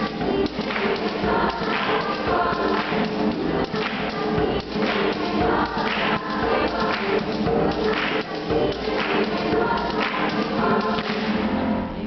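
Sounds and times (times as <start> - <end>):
hand claps: 0.0 - 11.4
girls' choir singing: 0.0 - 12.0.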